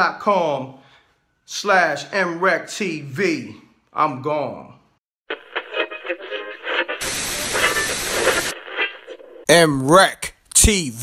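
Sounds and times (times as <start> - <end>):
television static hiss: 5.3 - 9.4
tinny radio-like sound: 5.3 - 9.6.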